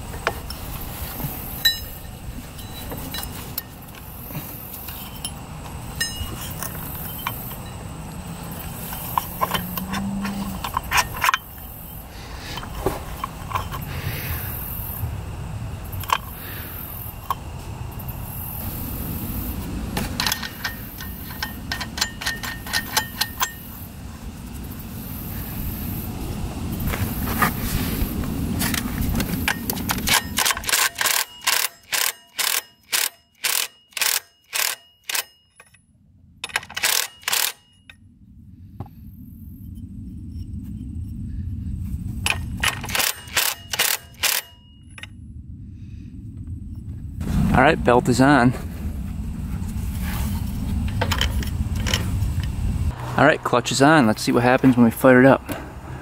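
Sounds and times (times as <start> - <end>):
metal parts clinking: 1.6 - 4.1, 4.7 - 7.8, 8.5 - 13.9, 15.9 - 16.4, 20.0 - 23.7, 28.6 - 38.0, 42.2 - 45.2, 50.9 - 52.2
impact wrench bursts: 20.0 - 23.7, 29.4 - 35.8, 36.4 - 37.7, 42.3 - 44.6.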